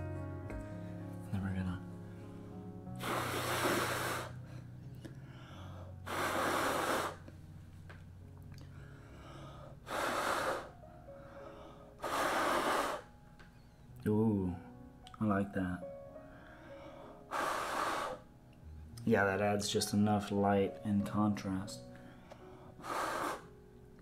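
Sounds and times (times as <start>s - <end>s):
person blowing hard through lips: 2.8s - 4.6s, 5.9s - 7.3s, 9.8s - 10.8s, 12.0s - 13.2s, 17.3s - 18.3s, 22.7s - 23.5s.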